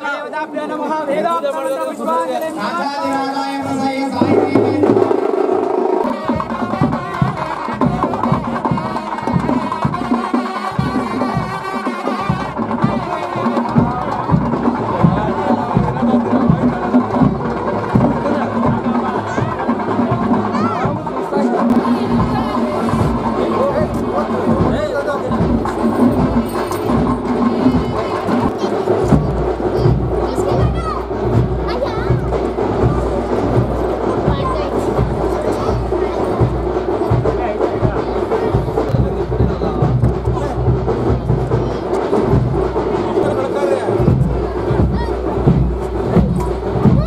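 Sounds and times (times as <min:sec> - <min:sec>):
crowd chatter: 0:00.0 - 0:47.0
music with repeated drum strokes: 0:02.2 - 0:47.0.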